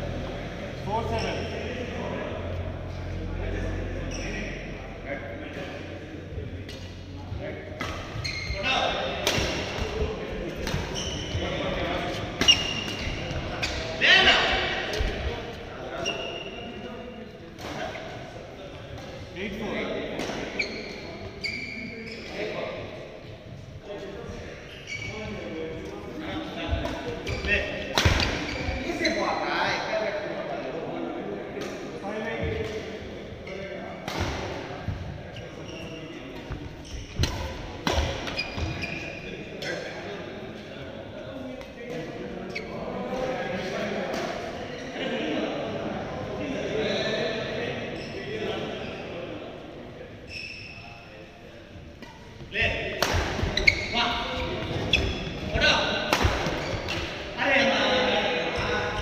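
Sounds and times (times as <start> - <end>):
shoes squeaking on court: 7.7 - 13.9, 14.9 - 16.8, 20.2 - 22.6, 24.6 - 29.3, 34.8 - 39.8, 42.5 - 42.9, 50.2 - 50.9, 53.2 - 57.3
racket hitting shuttlecock: 27.9 - 28.5, 56.0 - 57.2.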